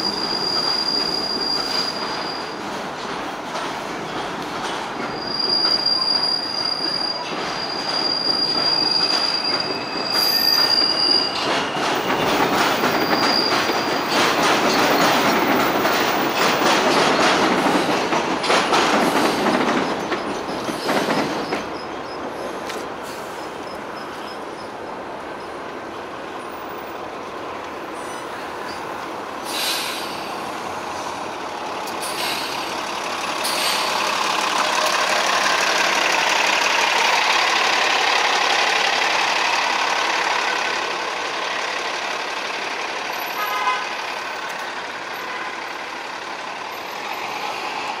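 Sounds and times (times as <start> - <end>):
street traffic: 0.0 - 48.0
bus passing by: 22.3 - 48.0
short hiss: 29.4 - 30.5, 32.0 - 32.7, 33.4 - 34.1.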